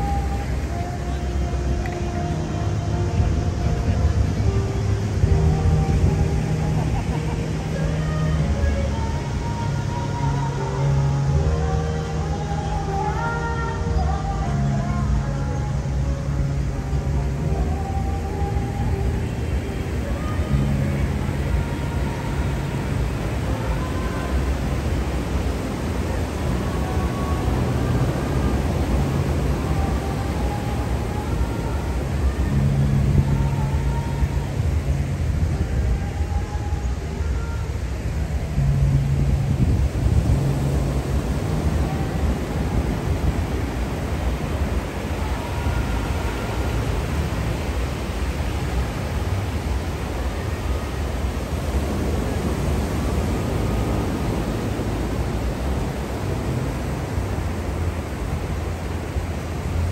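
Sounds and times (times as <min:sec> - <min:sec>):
low hum: 0:00.0 - 0:59.9
ocean surf on a beach: 0:00.0 - 0:59.9
wind rumbling on microphone: 0:00.0 - 0:59.9.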